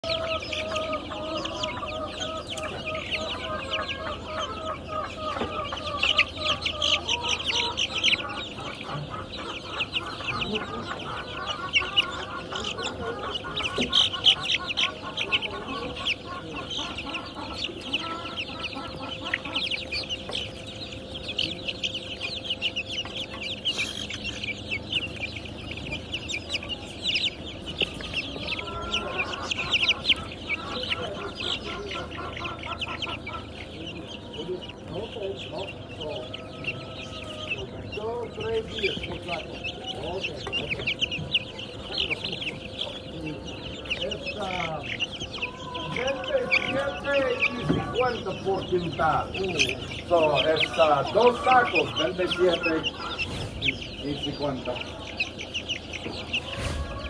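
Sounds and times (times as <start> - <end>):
chicks peeping: 0.0 - 57.0.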